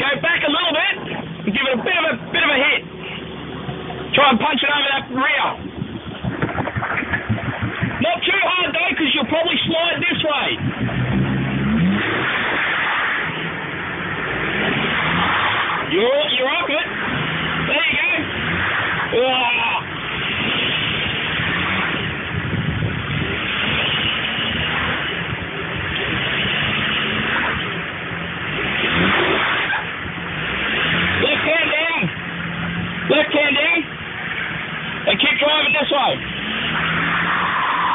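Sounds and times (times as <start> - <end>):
car engine revving under load: 0.0 - 37.9.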